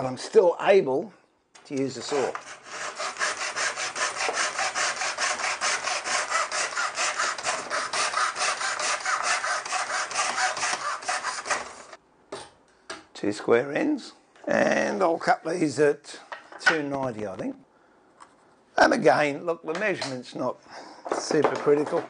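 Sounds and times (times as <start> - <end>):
hand saw cutting wood: 2.0 - 12.0.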